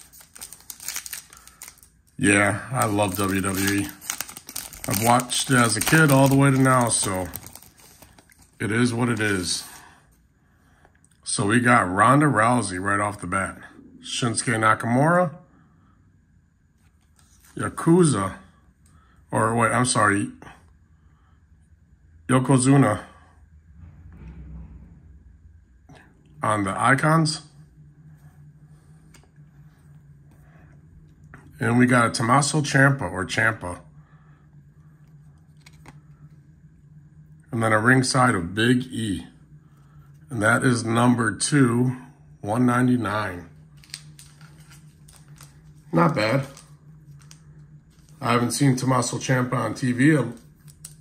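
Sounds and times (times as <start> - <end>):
foil wrapper crinkling: 0.0 - 9.8, 43.7 - 47.4
low room hum: 0.0 - 51.0.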